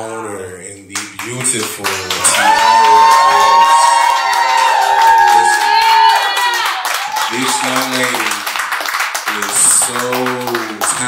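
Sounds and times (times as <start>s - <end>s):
small audience clapping: 1.0s - 11.0s.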